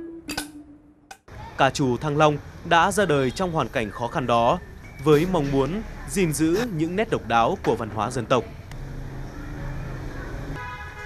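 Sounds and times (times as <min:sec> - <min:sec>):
traffic hum: 0:00.4 - 0:11.0
vehicle horn held tone: 0:10.6 - 0:11.0.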